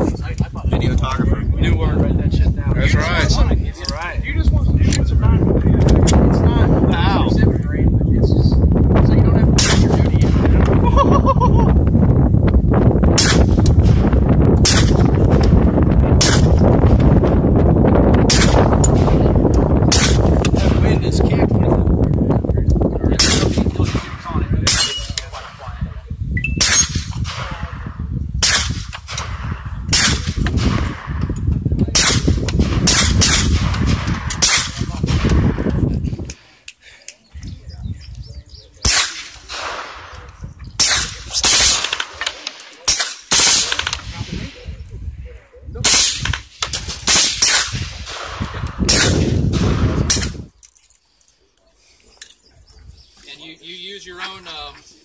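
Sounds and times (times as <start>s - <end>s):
low rumble on microphone: 0.0s - 36.4s, 43.6s - 50.6s
suppressed gunshots: 9.6s - 10.8s, 13.1s - 17.4s, 18.1s - 19.3s, 19.9s - 20.9s, 26.6s - 35.8s, 38.8s - 44.5s, 45.8s - 50.4s.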